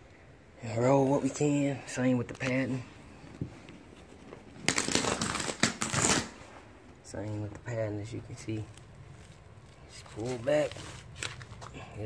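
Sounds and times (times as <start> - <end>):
carpet tearing free: 4.6 - 6.5.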